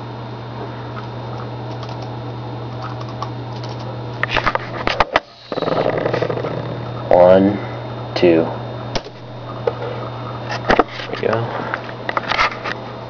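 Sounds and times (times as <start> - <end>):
steady low hum: 0.0 - 13.0
computer mouse and key clicks: 1.0 - 2.1, 2.8 - 3.9.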